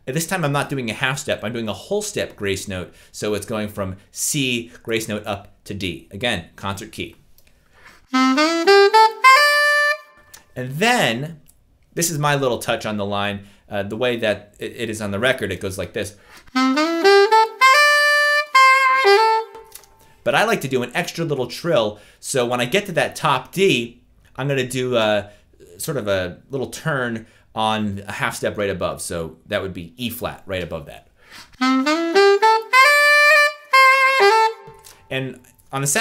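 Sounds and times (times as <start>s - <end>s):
alto saxophone lick: 8.0s - 10.5s, 16.4s - 20.0s, 31.4s - 35.1s.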